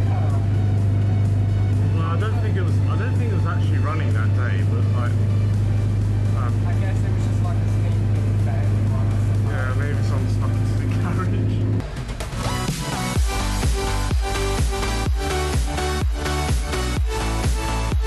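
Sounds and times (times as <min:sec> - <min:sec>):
bus engine drone: 0:00.0 - 0:18.0
voices: 0:06.3 - 0:11.8.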